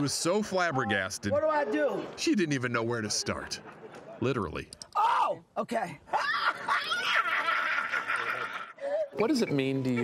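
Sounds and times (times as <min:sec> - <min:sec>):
woman laughing and shrieking: 0:06.1 - 0:09.1.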